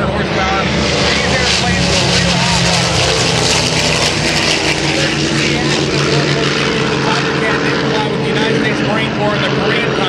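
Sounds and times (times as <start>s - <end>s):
propeller plane engines drone: 0.0s - 10.0s.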